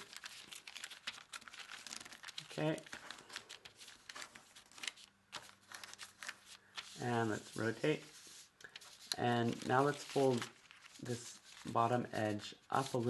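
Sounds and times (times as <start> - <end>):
paper rustling and crackling: 0.0 - 13.0.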